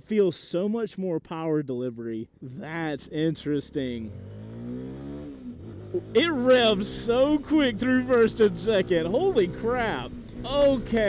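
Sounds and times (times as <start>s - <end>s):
motorcycle engine revving hard: 3.0s - 11.0s.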